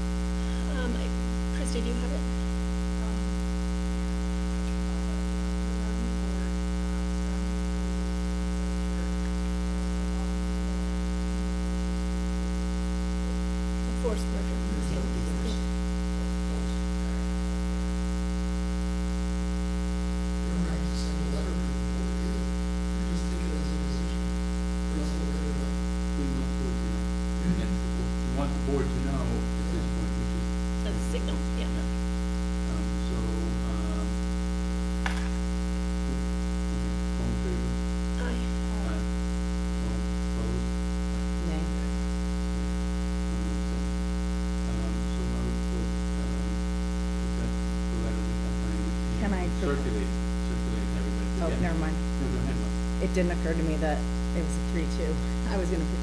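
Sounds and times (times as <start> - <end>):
electrical mains hum: 0.0 - 56.0
faint murmuring voices: 24.9 - 31.9, 32.7 - 34.1, 36.1 - 39.1, 39.8 - 40.6, 44.6 - 46.5, 47.4 - 53.1.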